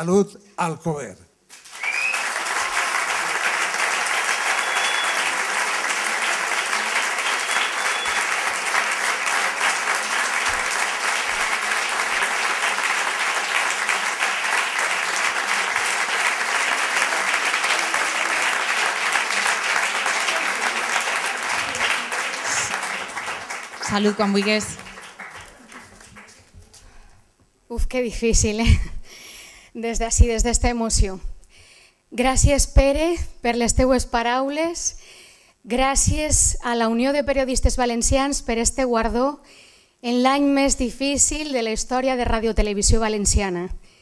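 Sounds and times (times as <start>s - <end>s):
crowd applauding: 1.5s - 26.8s.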